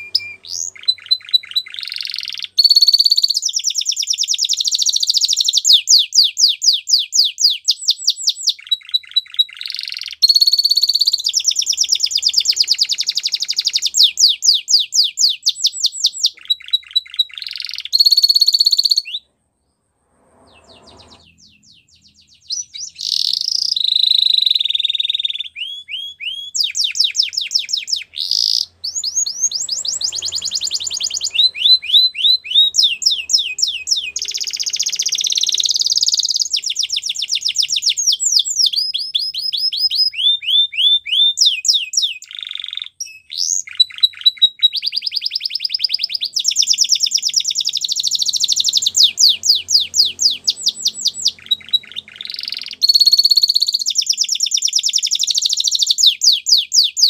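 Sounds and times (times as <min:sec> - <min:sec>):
canary singing rapid trills: 0:00.0 - 0:19.3, 0:20.5 - 0:57.0.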